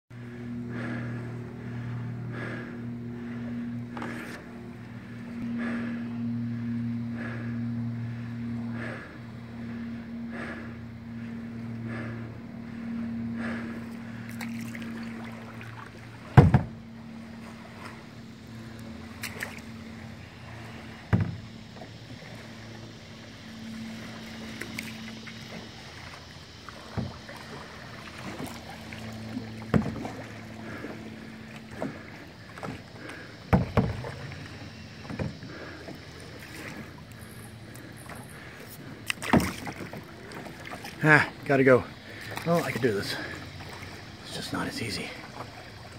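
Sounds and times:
low hum: 0.1s - 45.9s
faint water noise: 0.2s - 45.9s
wooden knocks against canoe hull: 16.3s - 16.8s, 21.0s - 21.9s, 26.8s - 27.4s, 29.5s - 30.2s, 33.5s - 34.4s, 35.0s - 35.5s, 39.0s - 40.0s.

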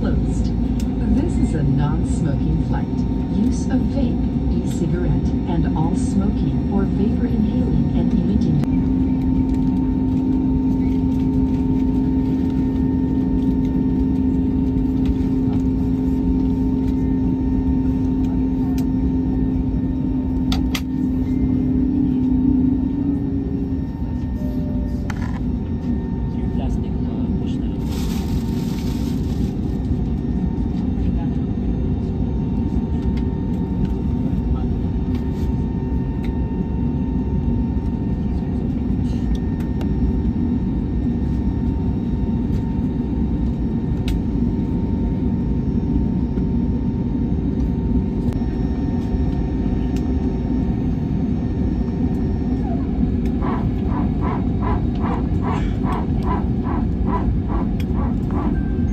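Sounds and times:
jet engines rumbling in cabin: 0.0s - 58.9s
rhythmic pulses: 52.9s - 58.9s.

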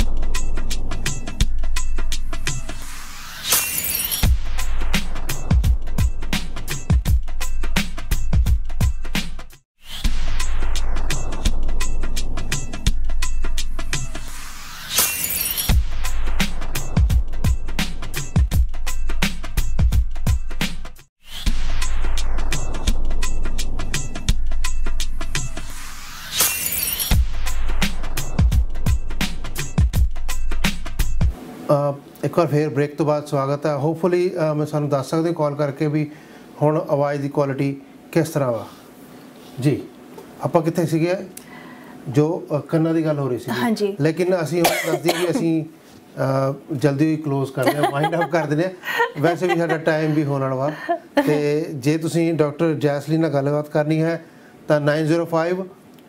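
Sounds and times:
drum beat: 47.7s - 48.4s, 49.0s - 51.3s.

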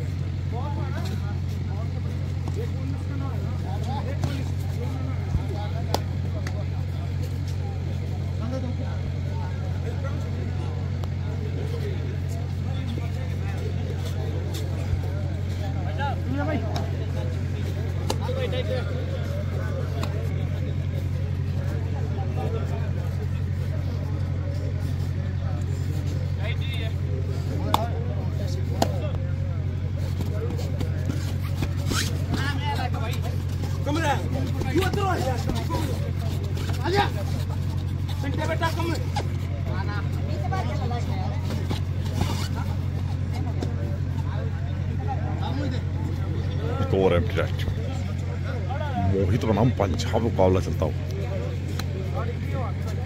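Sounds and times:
scattered voices: 0.0s - 53.0s
steady low hum: 0.0s - 53.0s.

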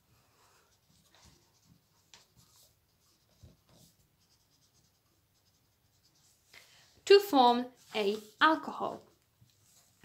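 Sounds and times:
felt-tip pen scratching on paper: 0.7s - 6.5s.

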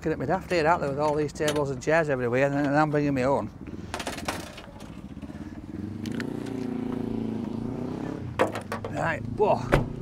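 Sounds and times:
vehicle engine passing: 5.2s - 10.0s.

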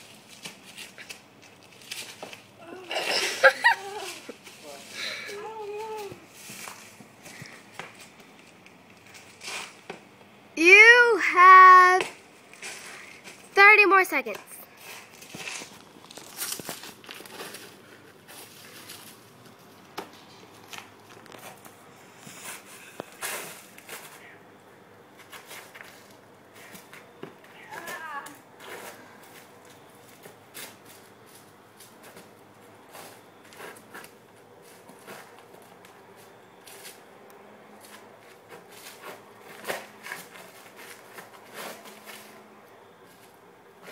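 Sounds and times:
footsteps on dry leaves: 3.3s - 9.8s, 14.7s - 21.6s
faint voices: 3.8s - 6.3s.

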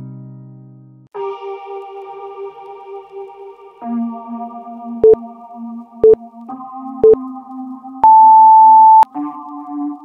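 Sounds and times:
soft synth music: 1.2s - 10.0s
electronic timer beeps: 8.0s - 9.1s.

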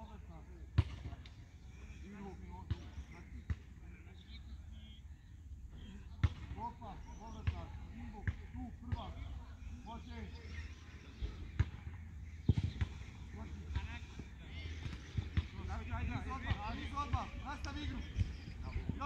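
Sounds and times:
faint distant voices talking: 0.0s - 19.0s.

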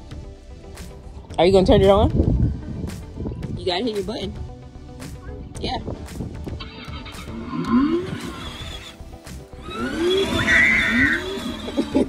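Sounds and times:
electronic swooping rev effects: 6.6s - 11.9s.

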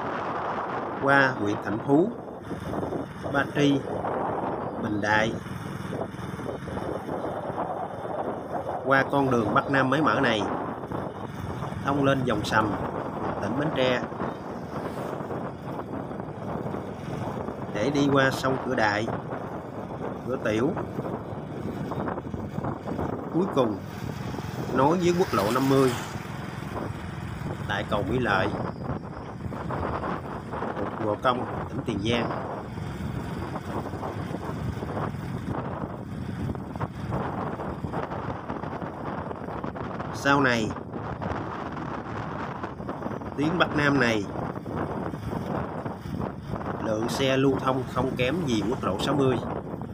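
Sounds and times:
wind buffeting microphone: 0.0s - 49.9s
vehicle running noise: 2.4s - 40.1s.

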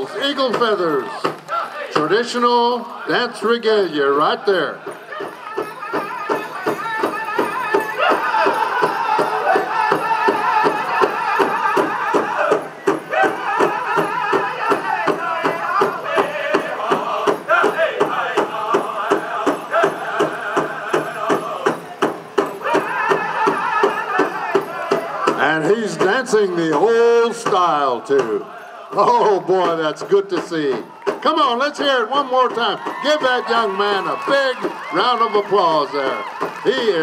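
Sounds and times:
drum group singing: 0.0s - 3.2s, 4.3s - 36.8s
large drum steady beat: 4.8s - 35.2s.

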